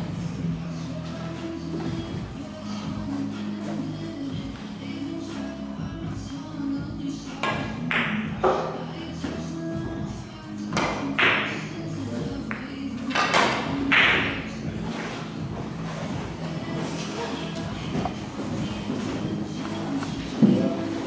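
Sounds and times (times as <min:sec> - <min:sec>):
music playing: 0:00.0 - 0:21.0.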